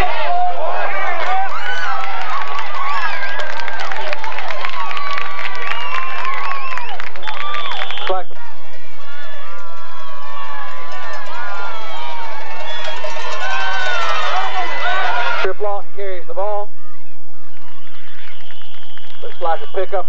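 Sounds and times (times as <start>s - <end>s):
crowd talking and shouting: 0.0s - 20.0s.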